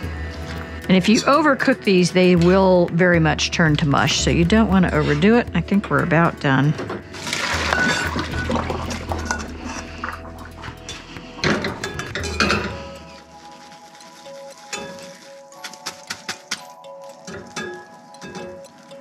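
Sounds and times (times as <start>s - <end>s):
background music: 0.0s - 19.0s
water splashing into a sink: 7.2s - 9.3s.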